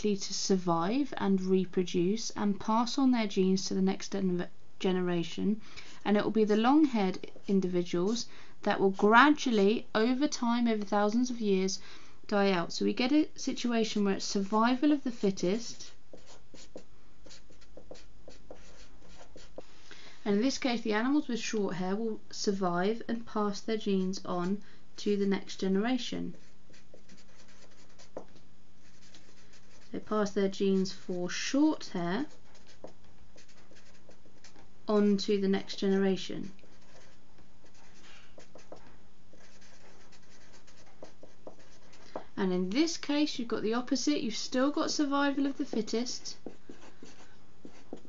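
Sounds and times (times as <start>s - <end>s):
faint steady hum: 0.0s - 48.0s
marker pen writing on paper: 13.9s - 19.7s, 26.3s - 30.1s, 32.2s - 34.7s, 36.4s - 42.3s, 45.6s - 48.0s.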